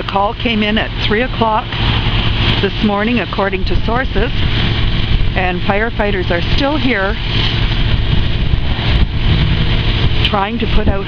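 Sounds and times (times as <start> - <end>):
fire truck engine humming: 0.0 - 11.0.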